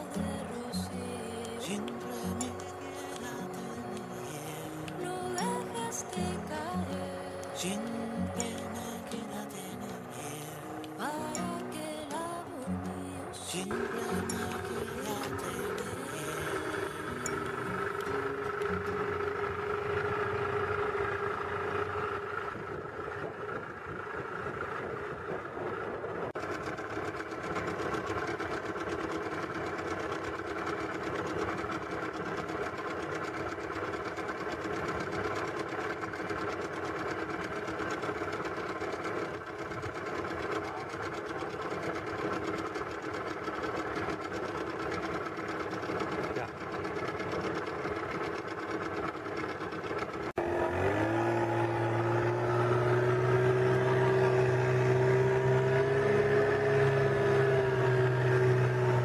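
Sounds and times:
outboard motor running: 0.0s - 59.0s.

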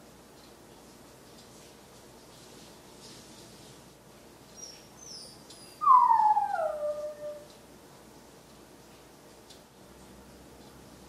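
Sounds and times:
dog howling: 5.7s - 7.5s.

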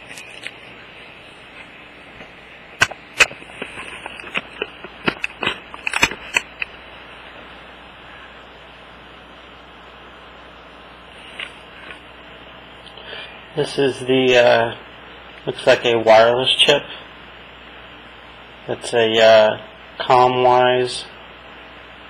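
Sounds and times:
steady hiss: 0.0s - 22.0s.

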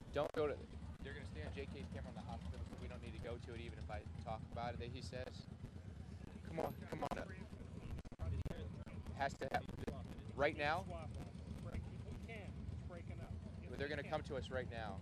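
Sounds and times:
distant people talking: 0.0s - 15.0s
low rumble: 0.0s - 15.0s.

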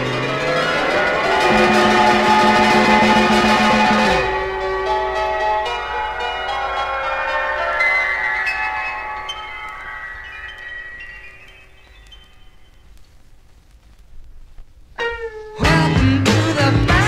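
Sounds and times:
psychedelic rock music: 0.0s - 12.3s, 15.0s - 17.0s
bell-like struck notes: 0.0s - 12.8s.

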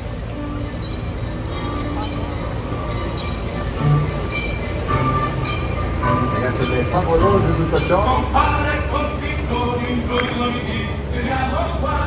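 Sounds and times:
diesel engines rumbling: 0.0s - 12.0s.

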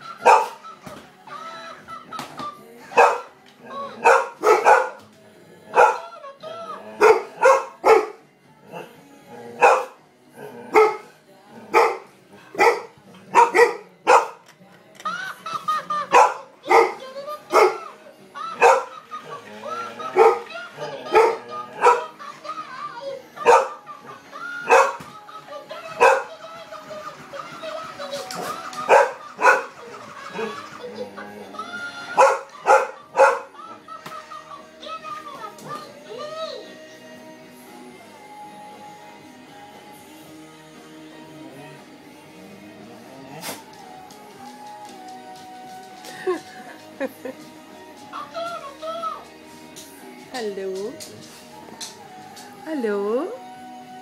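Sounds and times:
dog barking: 0.2s - 0.6s, 2.9s - 3.3s, 4.0s - 5.0s, 5.7s - 6.1s, 7.0s - 8.2s, 9.6s - 10.0s, 10.7s - 11.1s, 11.7s - 14.4s, 16.1s - 17.9s, 18.6s - 19.0s, 20.1s - 22.2s, 23.4s - 23.8s, 24.6s - 25.0s, 26.0s - 26.3s, 28.4s - 29.7s, 32.2s - 33.5s.

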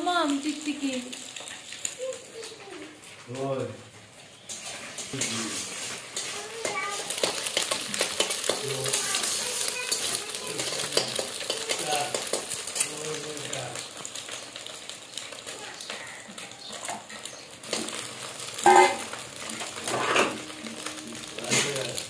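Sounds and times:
onion sizzling in oil: 0.0s - 22.0s
metal spatula scraping pan: 4.4s - 12.9s, 18.6s - 21.7s
spatula tapping pan: 6.0s - 12.9s.

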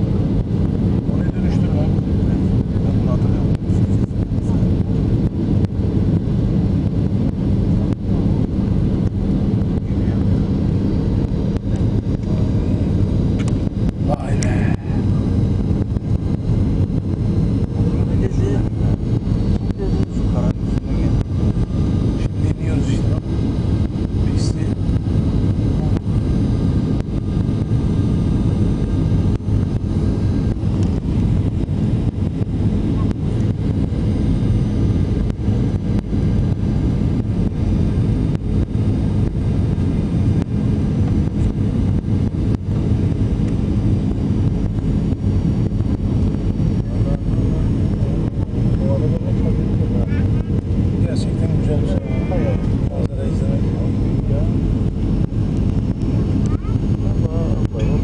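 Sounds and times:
engine and airflow rumble: 0.0s - 58.0s
faint steady hum: 0.0s - 58.0s.

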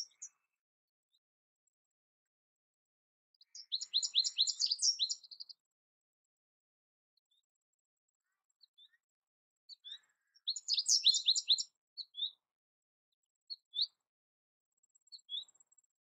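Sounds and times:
bird twittering: 3.4s - 5.5s, 9.7s - 12.4s.

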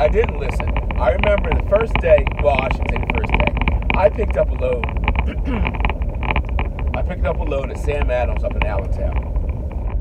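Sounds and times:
car road and engine rumble: 0.0s - 10.0s
light ticks and rattles: 0.0s - 10.0s
person clearing throat: 5.2s - 5.8s.

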